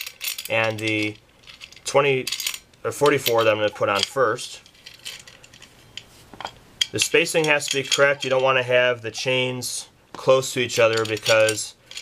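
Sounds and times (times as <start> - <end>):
metal washers and bolts clinking: 0.0 - 9.4, 10.1 - 12.0.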